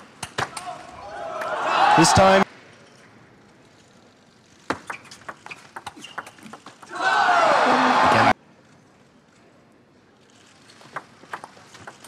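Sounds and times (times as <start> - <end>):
crowd cheering: 0.5 - 2.4, 6.8 - 8.4
table tennis ball clicking: 4.7 - 6.9, 10.8 - 12.0.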